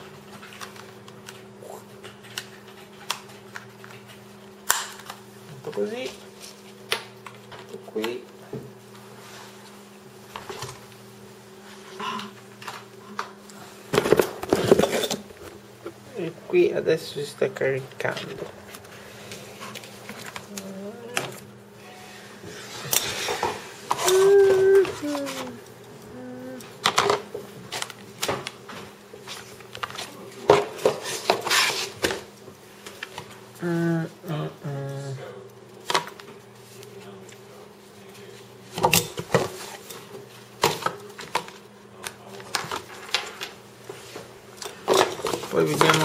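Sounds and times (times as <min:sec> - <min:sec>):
steady low hum: 0:00.0 - 0:45.5.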